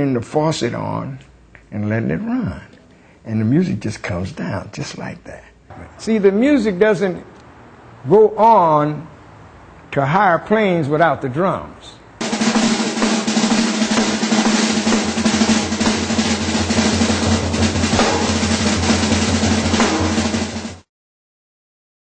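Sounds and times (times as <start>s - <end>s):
drum roll on snare and cymbals: 12.2s - 20.9s.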